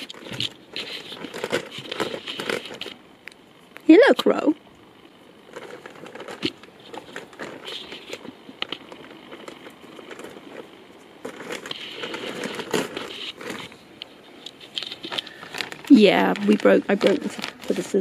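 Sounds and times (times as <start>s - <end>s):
plastic bag crinkling: 0.0s - 3.0s, 5.4s - 18.0s
clicks and crackles: 0.0s - 18.0s.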